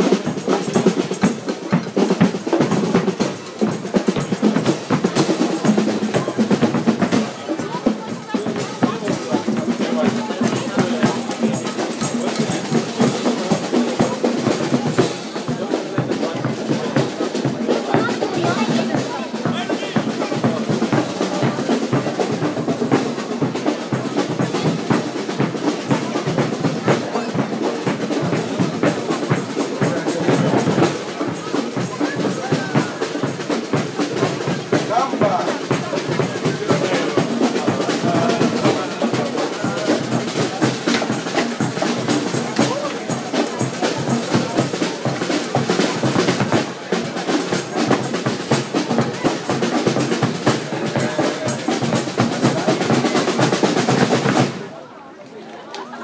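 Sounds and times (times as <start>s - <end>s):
bass drum beats: 0.0s - 47.2s
snare drum rolls: 0.0s - 54.8s
crowd chatter: 0.0s - 56.0s.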